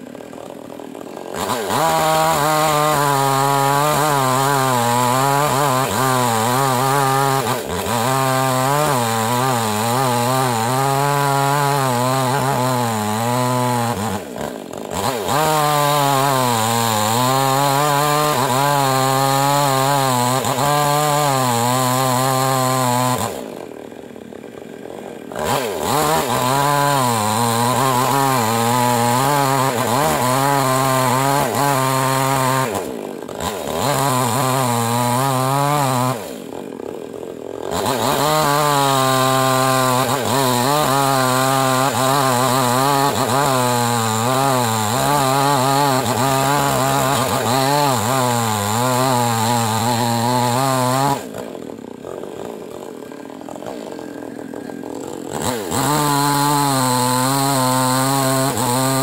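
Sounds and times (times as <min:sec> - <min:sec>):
chainsaw cutting wood: 0:00.0 - 0:59.0.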